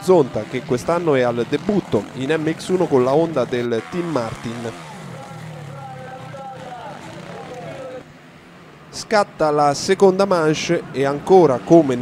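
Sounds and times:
motocross bike engines: 0.0s - 12.0s.

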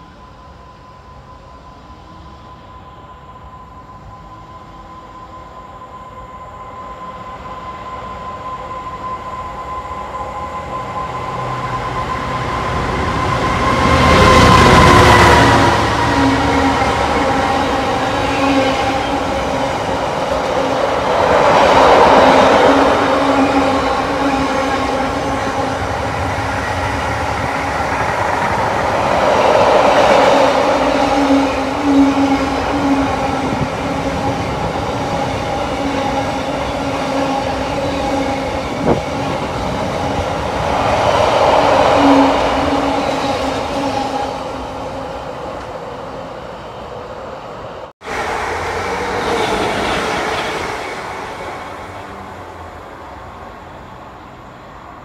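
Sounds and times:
freight train wheels rumbling: 0.0s - 55.0s.

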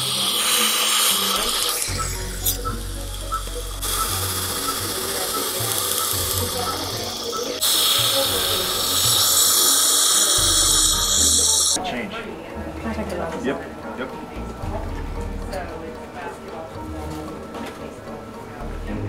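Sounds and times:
dental laser hissing with ticks: 0.0s - 11.8s
louder bright hiss: 0.0s - 11.8s.

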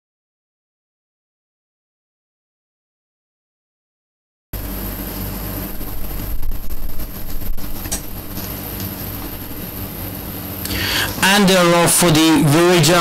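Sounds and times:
steady low hum: 4.6s - 13.0s.

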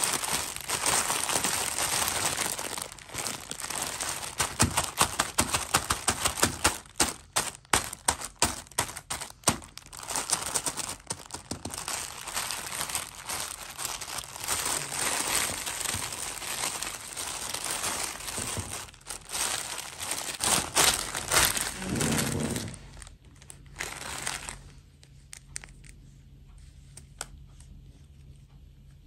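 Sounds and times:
plastic bag crinkling: 0.0s - 25.9s.

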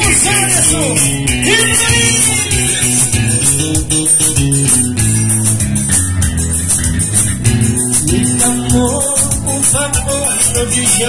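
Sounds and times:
band playing instrumental music: 0.0s - 11.0s
bass line: 0.0s - 11.0s.

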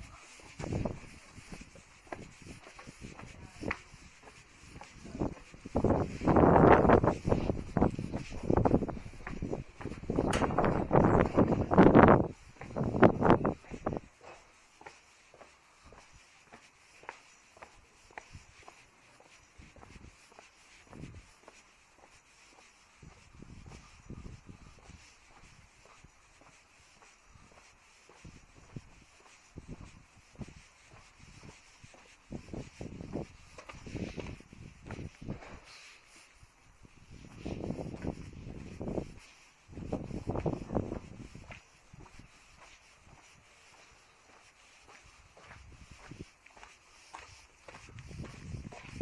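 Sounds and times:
footsteps on concrete: 0.0s - 49.0s.

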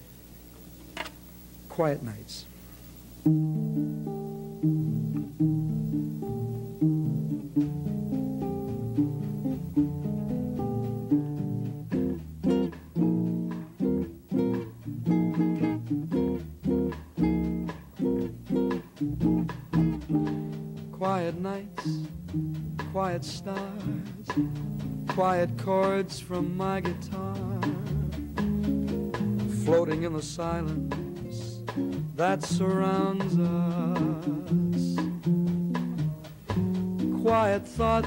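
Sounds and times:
ukulele strumming: 3.2s - 38.0s
man singing: 20.9s - 22.1s, 22.8s - 28.4s, 29.4s - 35.3s, 37.0s - 38.0s.

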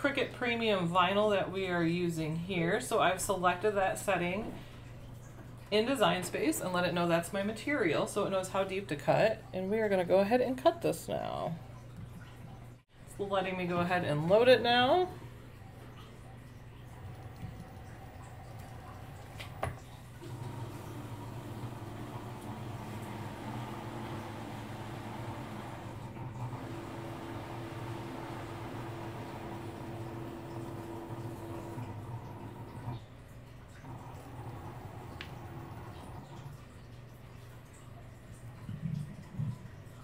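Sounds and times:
cutting machine motors humming: 20.2s - 33.0s, 33.8s - 36.5s
click: 35.1s - 35.4s.

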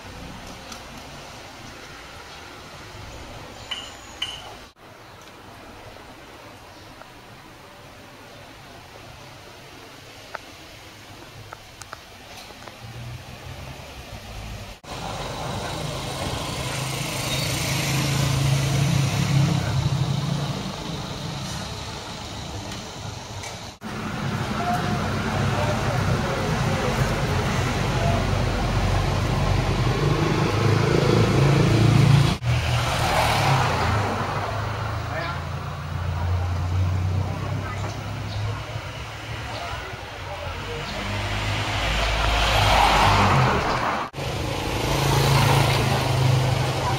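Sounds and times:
vehicles passing: 0.0s - 46.9s.

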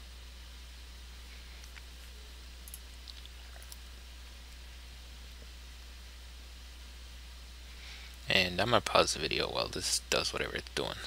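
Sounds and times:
low electrical hum and hiss: 0.0s - 11.0s.

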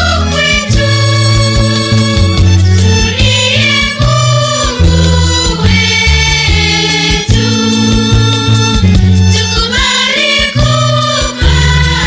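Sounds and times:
choir singing gospel: 0.0s - 12.0s
instrumental backing with beat: 0.0s - 12.0s.

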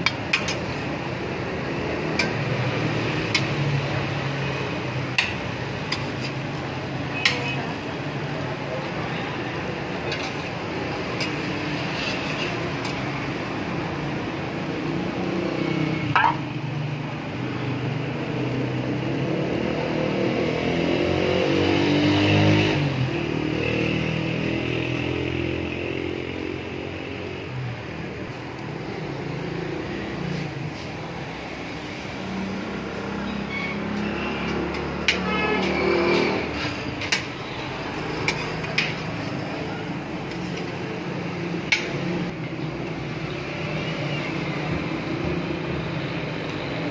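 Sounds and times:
metal spatula scraping a griddle: 0.0s - 8.4s, 9.6s - 13.5s, 32.8s - 40.8s
griddle sizzling: 0.0s - 20.4s, 24.0s - 46.9s
road traffic passing: 0.0s - 46.9s
engine revving: 18.9s - 26.4s.

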